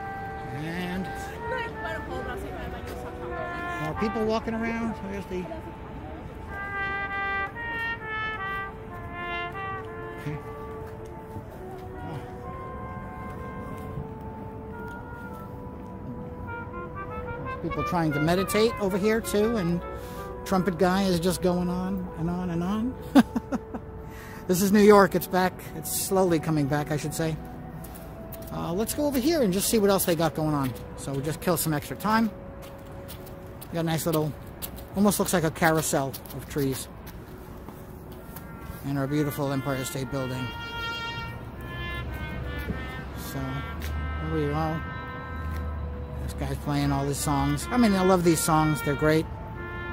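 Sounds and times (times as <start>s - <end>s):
trumpet playing slow tune: 0.0s - 28.5s, 38.2s - 49.9s
city background rumble: 0.0s - 49.9s.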